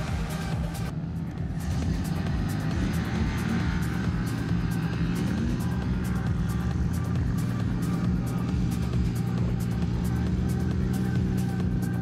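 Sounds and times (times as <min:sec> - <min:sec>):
engine droning: 0:00.0 - 0:12.0
music with steady beat: 0:00.0 - 0:12.0.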